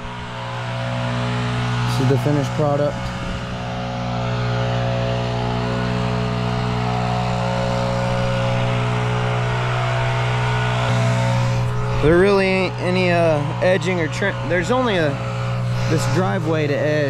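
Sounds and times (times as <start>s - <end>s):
lawn mower engine running: 0.0s - 17.0s.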